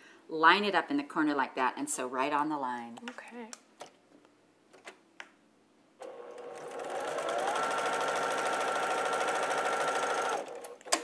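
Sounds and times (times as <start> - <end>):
sewing machine stitching: 6.0 - 11.0.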